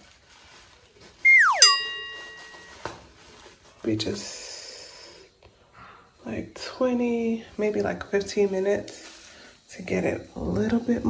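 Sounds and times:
bell-like chime ringing: 1.3 - 2.9.

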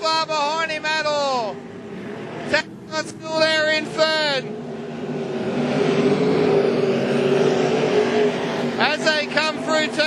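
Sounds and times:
man commentating: 0.0 - 1.6, 2.5 - 4.5, 8.8 - 10.0
race car engine running hard: 0.0 - 10.0.

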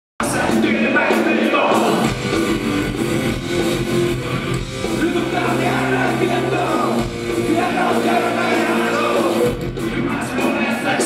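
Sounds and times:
live punk band playing: 0.2 - 11.0.

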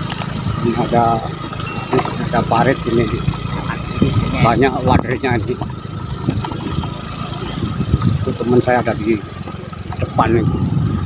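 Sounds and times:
small motorcycle engine running: 0.0 - 11.0.

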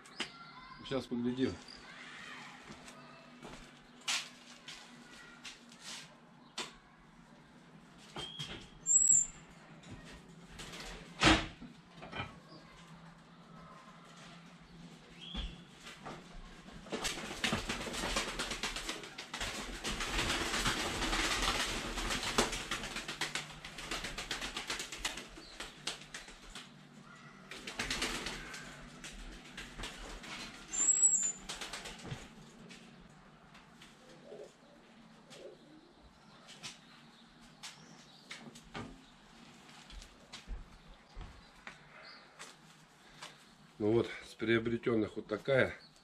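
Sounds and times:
pigeons flapping wings: 10.5 - 11.1, 16.8 - 32.4.

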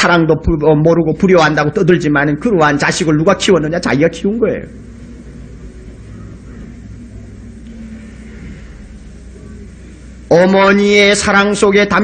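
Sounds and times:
low mains hum: 0.0 - 12.0
soft room noise: 0.0 - 12.0
faint hiss: 2.5 - 12.0.

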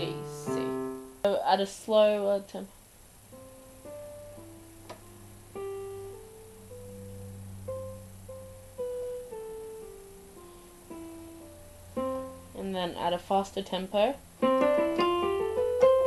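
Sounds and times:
low steady hum: 0.0 - 16.0
electronic keyboard playing a scale: 14.4 - 16.0.

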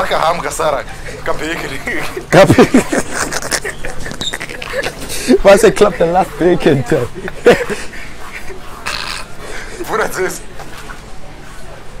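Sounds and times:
low background talking: 0.0 - 12.0.

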